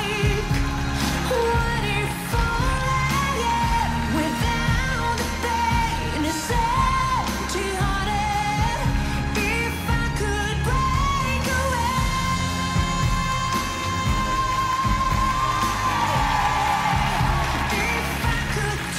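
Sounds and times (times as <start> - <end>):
woman singing pop ballad: 0.0 - 18.9.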